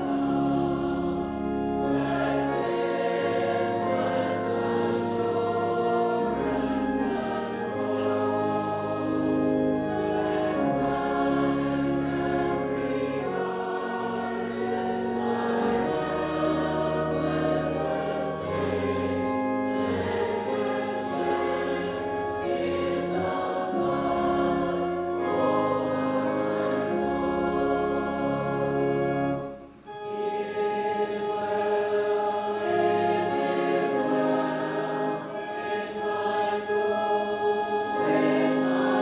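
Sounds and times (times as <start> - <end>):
congregation and choir singing a hymn: 0.0 - 39.0.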